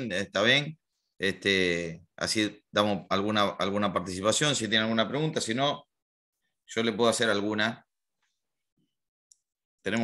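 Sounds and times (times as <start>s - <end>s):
man speaking: 0.0s - 6.0s, 6.7s - 7.9s.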